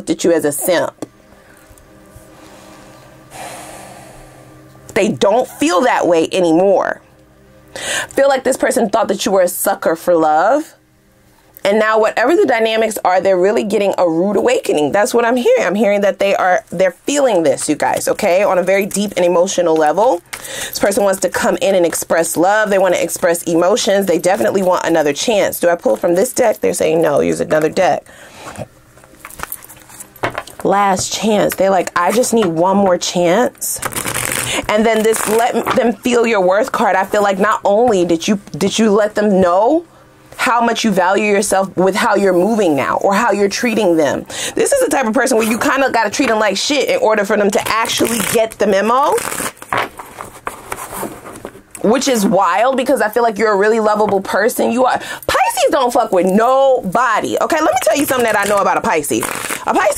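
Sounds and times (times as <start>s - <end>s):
faint background music: 0.0s - 59.9s
person drawing a breath: 1.3s - 4.6s, 20.3s - 20.8s, 28.1s - 28.6s
cards rustling: 33.8s - 35.8s, 57.8s - 59.9s.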